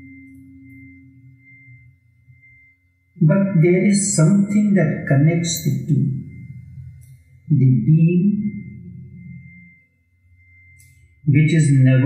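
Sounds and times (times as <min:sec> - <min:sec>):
faint high-pitched tone: 0:00.0 - 0:12.0
man narrating: 0:03.2 - 0:06.3, 0:07.5 - 0:08.6, 0:11.3 - 0:12.0.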